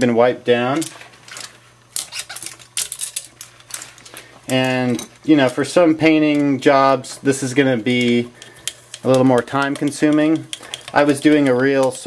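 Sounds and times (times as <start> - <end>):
brushes clicking in a can: 2.0 - 12.0.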